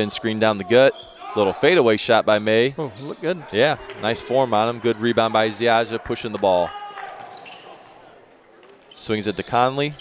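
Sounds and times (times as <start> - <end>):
gymnasium background noise: 0.0 - 10.0.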